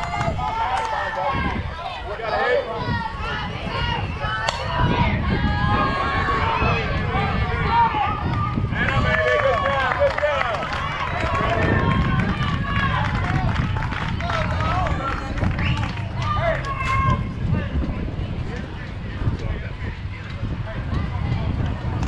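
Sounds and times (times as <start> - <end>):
steady low rumble: 0.0 - 22.0.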